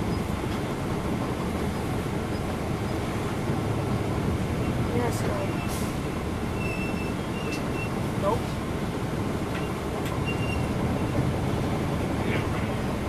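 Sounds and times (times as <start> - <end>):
bus engine idling: 0.0 - 13.0.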